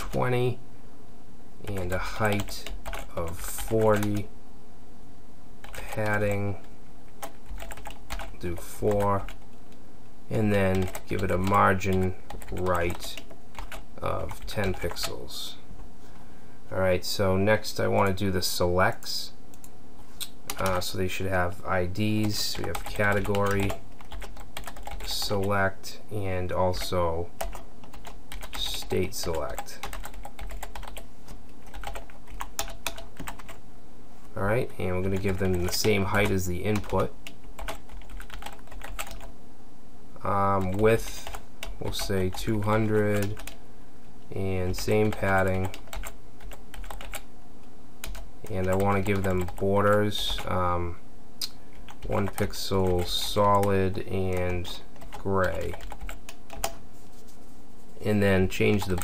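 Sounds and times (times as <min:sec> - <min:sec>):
low steady hum: 0:00.0 - 0:59.0
keyboard keys clicking: 0:01.7 - 0:03.2, 0:07.2 - 0:08.3, 0:10.7 - 0:11.6, 0:22.3 - 0:25.2, 0:29.2 - 0:31.0, 0:31.6 - 0:33.6, 0:35.2 - 0:39.3, 0:45.0 - 0:47.2, 0:55.0 - 0:56.8
keyboard typing: 0:01.7 - 0:04.2, 0:05.6 - 0:09.5, 0:10.4 - 0:15.2, 0:19.5 - 0:20.8, 0:22.2 - 0:25.6, 0:26.6 - 0:33.6, 0:35.0 - 0:39.3, 0:40.5 - 0:43.6, 0:44.7 - 0:47.3, 0:48.0 - 0:50.5, 0:51.4 - 0:56.8, 0:58.6 - 0:59.0.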